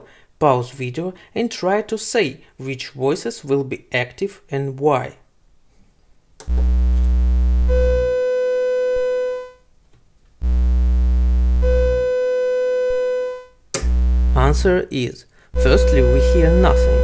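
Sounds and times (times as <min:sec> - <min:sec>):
low synthesizer drone: 0:06.5 - 0:08.2, 0:10.4 - 0:14.7, 0:15.6 - 0:17.0
higher sustained synthesizer tone: 0:06.5 - 0:09.5, 0:10.4 - 0:14.6, 0:15.6 - 0:17.0.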